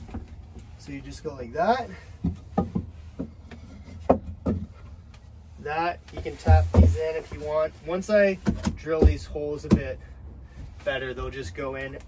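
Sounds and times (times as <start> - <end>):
dull wooden knocks: 2.1 - 5.0, 6.1 - 7.6, 8.3 - 10.0.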